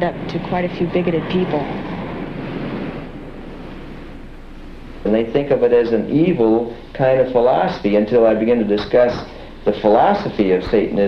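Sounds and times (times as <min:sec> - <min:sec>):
rushing outdoor ambient noise: 0:00.0 - 0:11.0.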